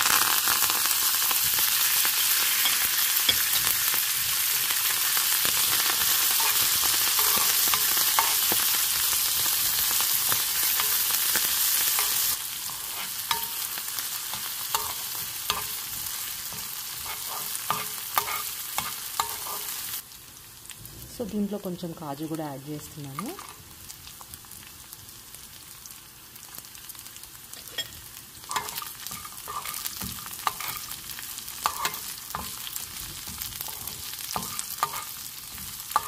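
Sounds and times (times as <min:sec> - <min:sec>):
spices sizzling in hot ghee: 0:00.0 - 0:36.0.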